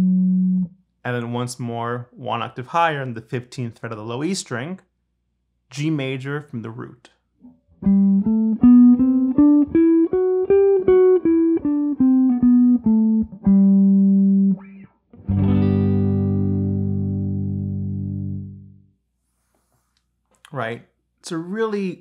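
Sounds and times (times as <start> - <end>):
guitar chord ringing: 0.0 - 0.7, 7.8 - 18.8
electric guitar playing a scale: 0.0 - 0.8, 7.8 - 18.8.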